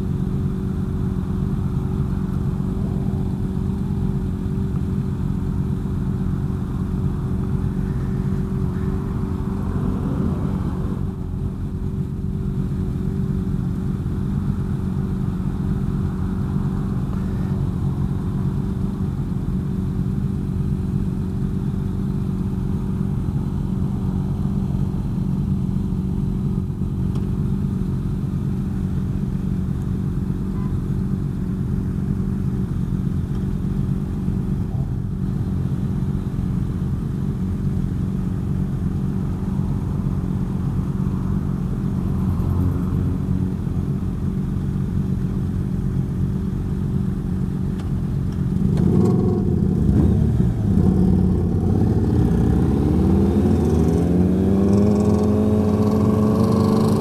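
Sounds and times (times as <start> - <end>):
motorcycle engine idling: 0.0 - 9.8, 11.0 - 50.6
other motorcycles: 0.0 - 57.0
motorcycle engine accelerating: 31.2 - 57.0.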